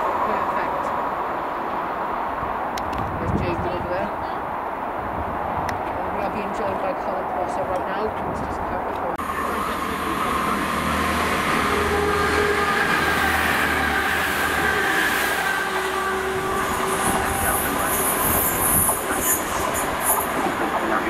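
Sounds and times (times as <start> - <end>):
diesel engine drone: 6.0 - 21.0
train wheels hissing on rail: 9.3 - 21.0.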